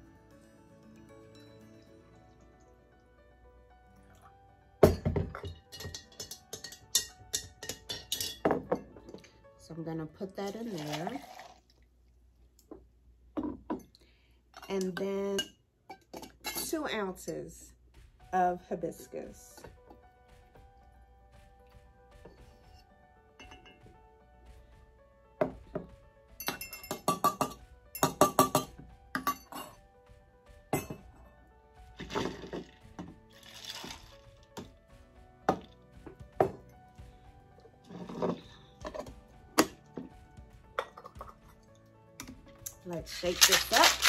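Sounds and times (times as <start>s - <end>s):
faint background music: 0.0s - 12.0s, 13.2s - 44.0s
glassware clinking: 4.8s - 9.2s, 23.4s - 23.8s, 26.4s - 29.8s, 30.8s - 31.0s
tea pouring into a glass: 10.6s - 11.8s, 32.0s - 34.3s.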